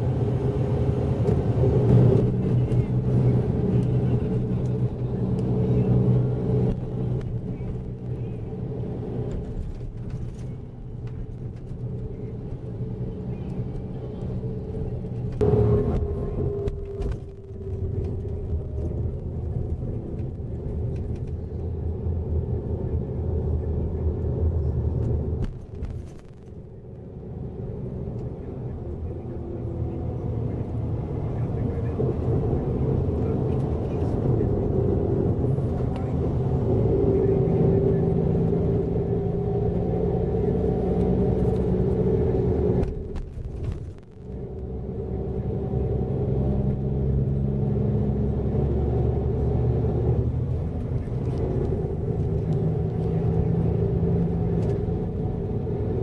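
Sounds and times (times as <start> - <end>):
bus engine and tyre rumble: 0.0 - 56.0.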